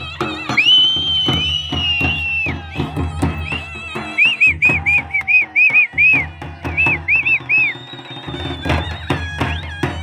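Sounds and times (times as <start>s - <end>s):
steady drum beats: 0.0s - 10.0s.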